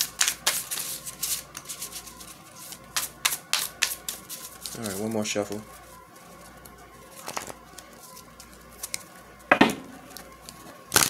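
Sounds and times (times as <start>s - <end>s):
cards rustling: 0.0s - 11.0s
crisp card snaps: 6.6s - 7.8s.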